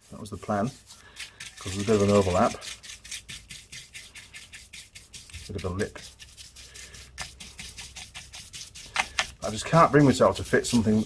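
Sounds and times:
paintbrush scrubbing plastic: 0.0s - 11.0s.

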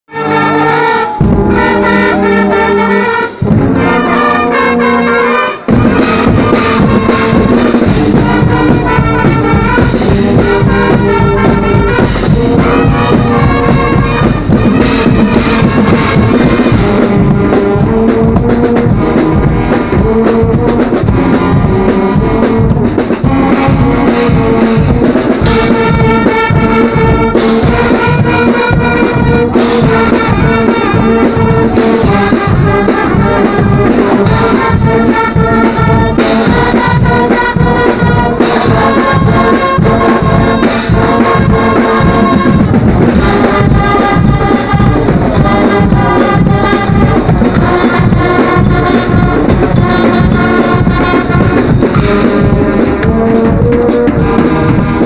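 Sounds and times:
brass band playing loudly: 0.0s - 55.0s
drums and cymbals: 0.1s - 55.0s.

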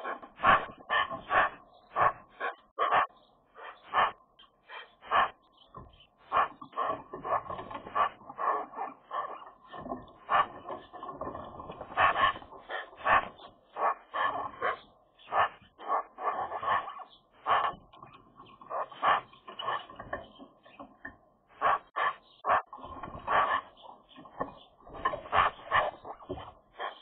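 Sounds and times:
magpies calling softly: 0.0s - 27.0s.

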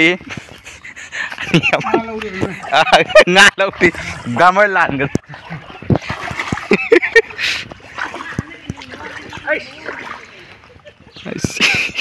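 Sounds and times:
water sloshing: 0.2s - 12.0s
water splash: 2.3s - 10.6s.

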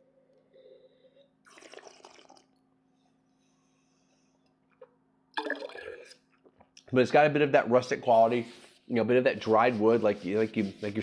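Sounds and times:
wine slurping: 1.4s - 2.6s.

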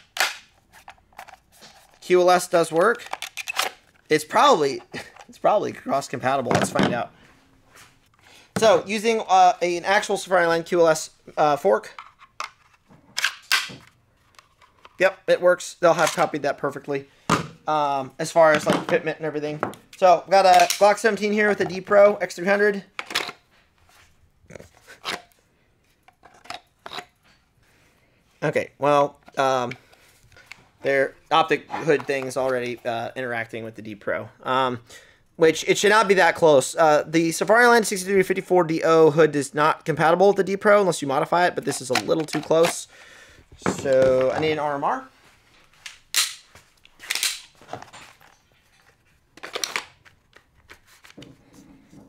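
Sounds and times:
pistol clicking into plastic holster: 0.1s - 0.5s, 13.2s - 14.0s, 45.9s - 47.6s.

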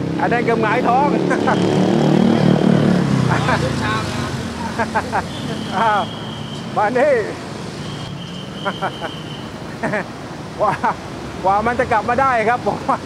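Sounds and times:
vehicle engine passing: 0.0s - 8.1s
voices talking: 0.2s - 13.0s.

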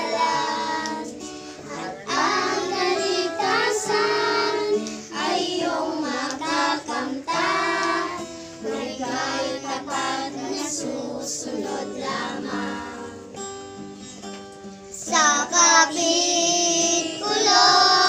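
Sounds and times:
children singing in unison: 0.0s - 13.2s, 15.0s - 18.0s.

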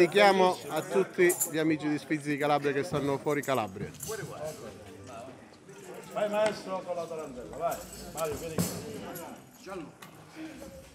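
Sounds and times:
murmured background chatter: 0.0s - 10.9s.

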